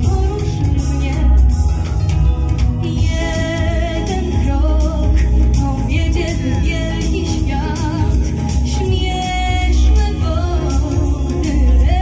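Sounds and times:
girl singing into microphone: 0:00.0 - 0:01.8, 0:02.8 - 0:12.0
backing track with heavy bass: 0:00.0 - 0:12.0.

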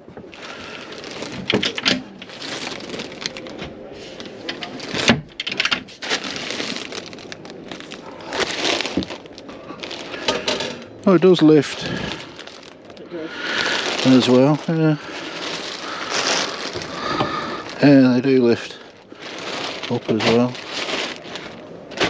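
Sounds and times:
plastic wrapping crinkling: 0:00.2 - 0:22.0.

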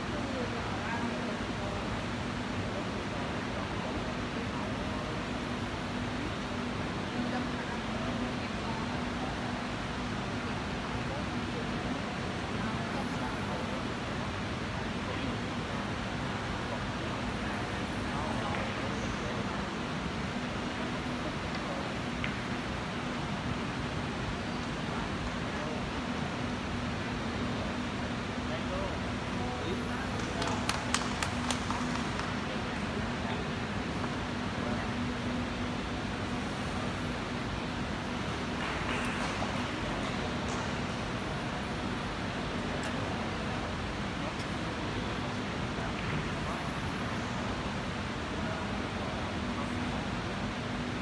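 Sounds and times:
low hum and hiss: 0:00.0 - 0:51.0
low murmur of voices: 0:00.0 - 0:51.0.

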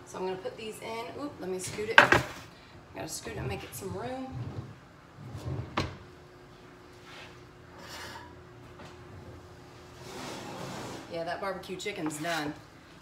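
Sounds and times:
pan scraping on oven rack: 0:10.0 - 0:11.2.

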